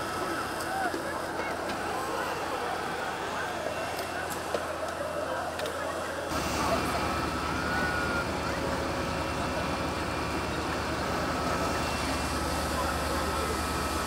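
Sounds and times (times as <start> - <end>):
fire engine droning: 0.0 - 14.0
voices talking: 0.0 - 14.0.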